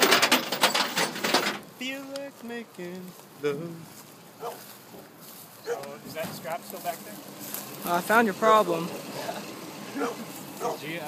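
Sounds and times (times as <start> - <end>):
person speaking: 1.8 - 4.0.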